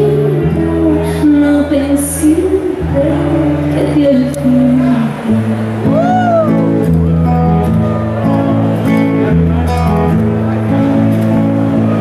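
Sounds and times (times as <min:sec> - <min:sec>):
guitar accompaniment: 0:00.0 - 0:12.0.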